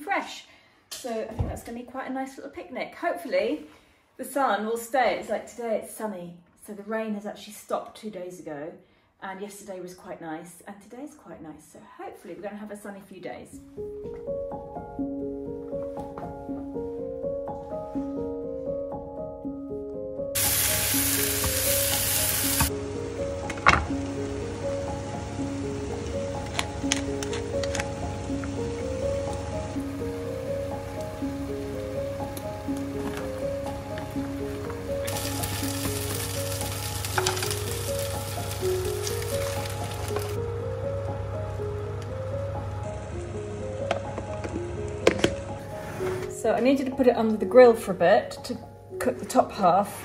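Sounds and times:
background music: 13.5 - 50.0
food sizzling in a pan: 20.4 - 27.5, 32.6 - 40.4.

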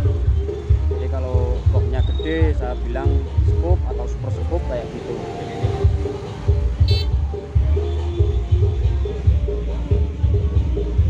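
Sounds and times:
music with heavy bass beats: 5.8 - 11.0
short horn toot: 6.8 - 7.1.

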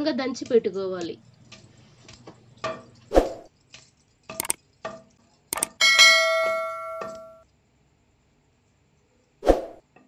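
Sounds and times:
bell chime: 5.8 - 7.4
wooden pestle knocking on stone mortar: 6.0 - 7.3.

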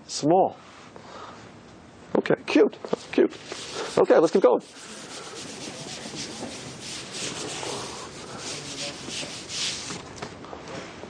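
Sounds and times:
rubbing strokes on writing board: 3.0 - 10.0.

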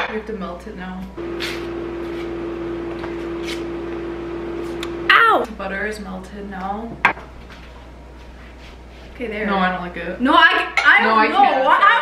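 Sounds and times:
microwave oven humming: 0.0 - 12.0.

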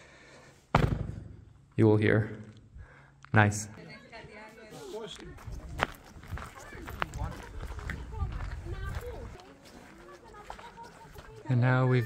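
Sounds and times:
people talking indistinctly: 3.4 - 12.0
footsteps: 4.4 - 12.0.

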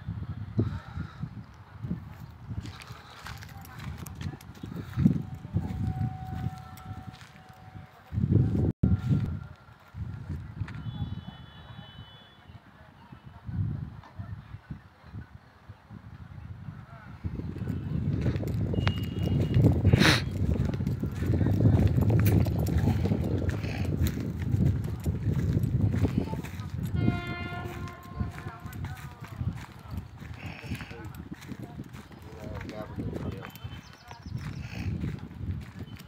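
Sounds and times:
indistinct background voices: 0.6 - 8.7, 16.7 - 36.0.

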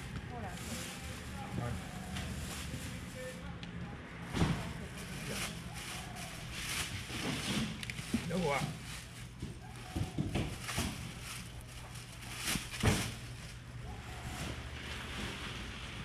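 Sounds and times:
plastic bags rustling: 0.0 - 3.5, 4.3 - 16.0.

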